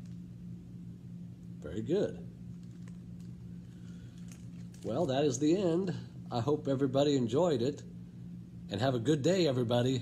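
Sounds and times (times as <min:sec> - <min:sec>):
low electrical hum: 0:00.0 - 0:10.0
man speaking: 0:01.6 - 0:02.3, 0:04.8 - 0:07.9, 0:08.7 - 0:10.0.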